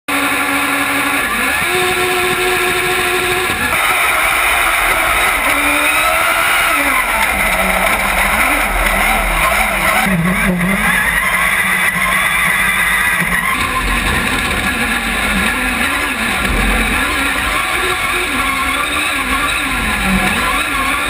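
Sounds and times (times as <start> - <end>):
racing engine at high revs: 0.1 - 21.0.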